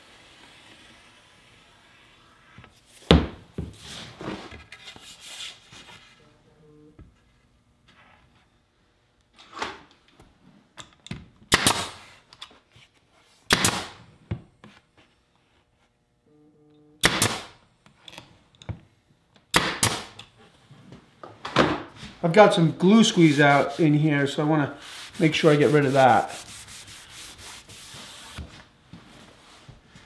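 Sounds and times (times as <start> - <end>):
nail gun firing: 11.5 - 12.0, 13.5 - 14.0, 17.0 - 17.6, 19.5 - 20.2.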